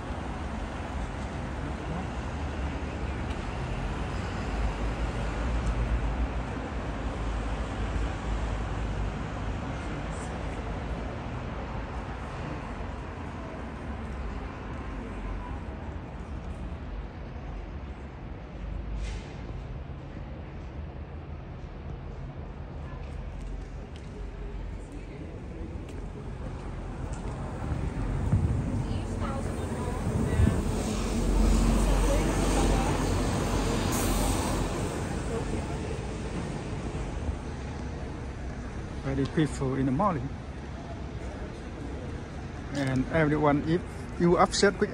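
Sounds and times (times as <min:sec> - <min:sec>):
traffic hum: 0:00.0 - 0:44.9
indistinct voices: 0:24.8 - 0:38.4
deep rumble: 0:26.0 - 0:33.9.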